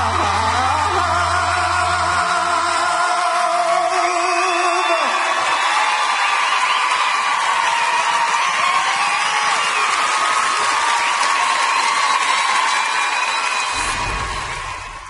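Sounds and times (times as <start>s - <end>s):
band chord: 0.0s - 3.3s
man singing: 0.0s - 5.2s
audience cheering and applauding: 0.0s - 15.0s
audience whooping: 0.0s - 15.0s.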